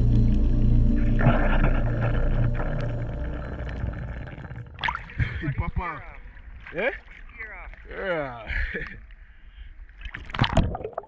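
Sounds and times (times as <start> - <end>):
muffled underwater rumble: 0.0 - 9.0.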